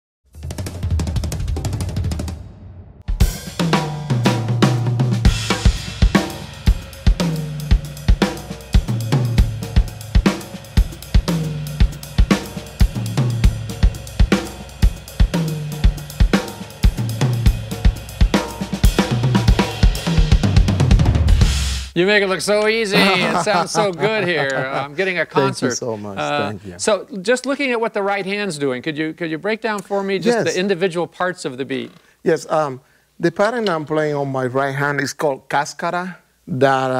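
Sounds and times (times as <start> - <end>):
drum kit latin jazz groove: 0.3 - 22.0
cymbals: 3.1 - 22.0.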